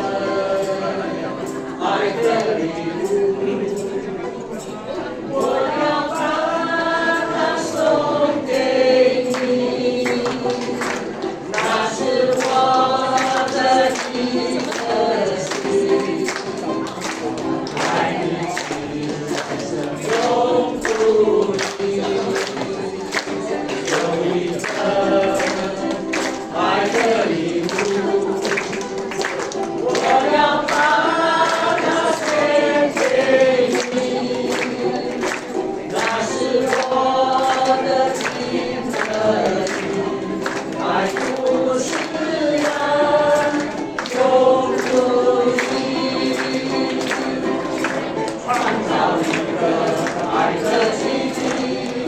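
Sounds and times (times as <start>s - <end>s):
group singing together: 0.0s - 52.0s
strummed ukuleles: 0.0s - 52.0s.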